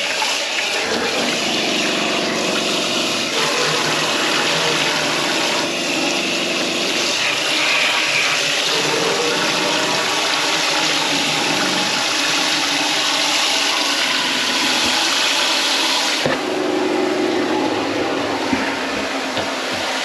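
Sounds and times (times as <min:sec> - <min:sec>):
faucet running into sink: 0:00.0 - 0:16.5.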